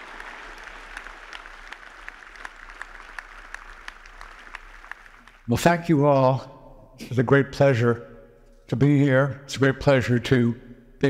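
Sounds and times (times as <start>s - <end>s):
audience applauding: 0.0s - 5.5s
speech: 5.5s - 8.0s, 8.7s - 10.7s.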